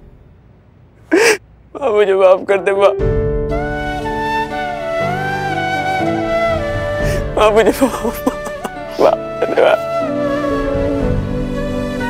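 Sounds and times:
man sobbing: 1.1 - 1.4, 7.2 - 9.9
man pleading tearfully: 1.1 - 2.0, 7.2 - 9.9.

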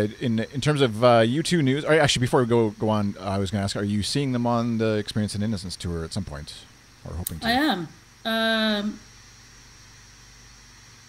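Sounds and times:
microphone hiss and hum: 0.0 - 11.0.

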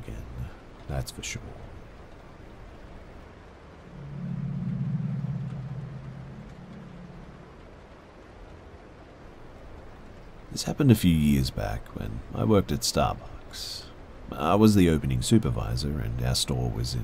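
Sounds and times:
faint hiss: 0.0 - 17.0
low steady drone: 1.4 - 10.4.

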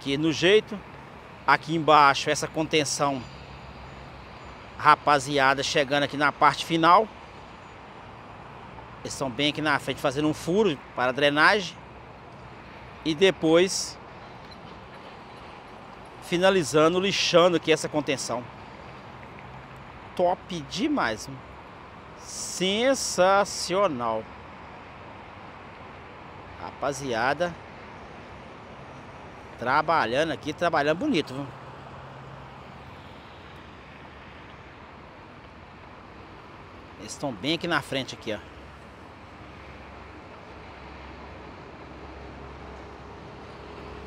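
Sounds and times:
steady background noise: 0.0 - 44.0.

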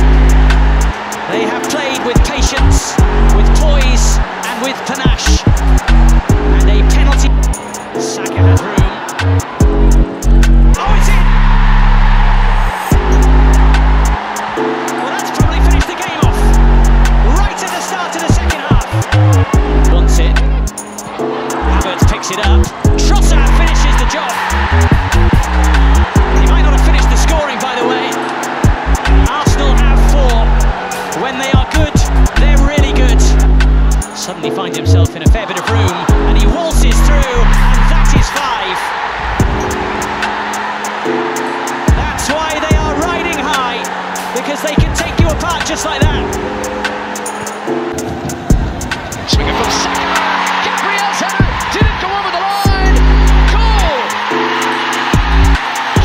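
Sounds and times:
music with heavy bass line: 0.0 - 34.2, 34.8 - 38.4, 39.4 - 52.0, 52.6 - 56.0
stadium crowd noise: 0.0 - 56.0.

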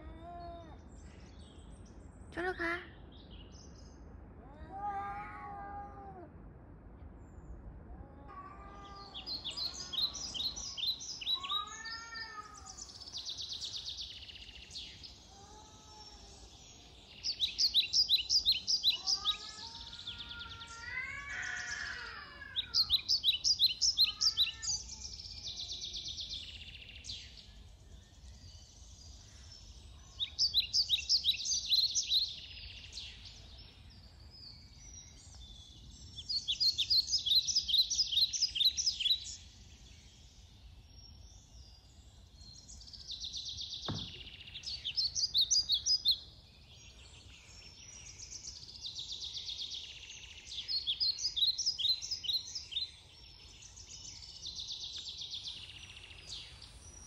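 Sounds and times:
cats yowling: 4.4 - 6.3, 7.9 - 10.4, 11.3 - 13.0, 15.3 - 16.4, 18.9 - 23.1, 24.0 - 24.9
songbird trilling: 9.1 - 14.4.

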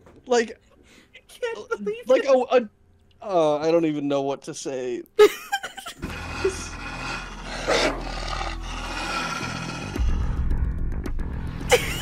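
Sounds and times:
wolf snarl: 6.0 - 10.5
wolf growling: 6.0 - 10.6.

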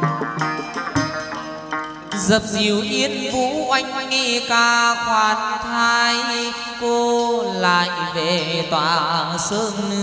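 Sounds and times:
band accompaniment: 0.0 - 3.7.

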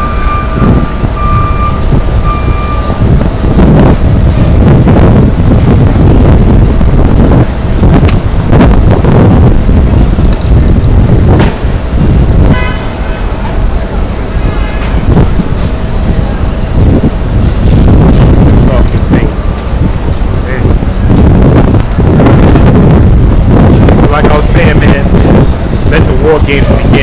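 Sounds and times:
vehicle horn toot: 0.0 - 2.9, 12.4 - 13.2
street traffic rumble: 0.0 - 27.0.

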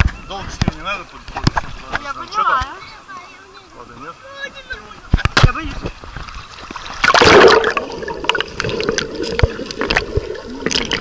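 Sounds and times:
sea water splashing: 6.0 - 11.0.

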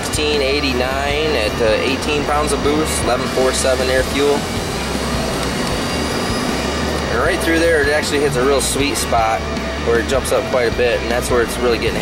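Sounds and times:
fan running: 0.0 - 12.0.

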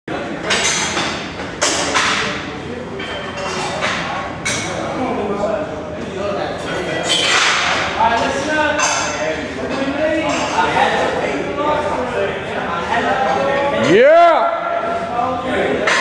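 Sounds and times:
room noise: 0.1 - 16.0.

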